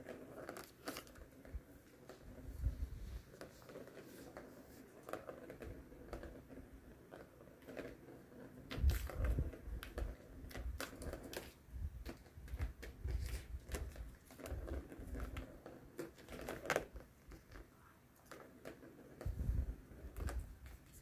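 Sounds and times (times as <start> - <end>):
plastic ball rolling in track: 0.0 - 21.0.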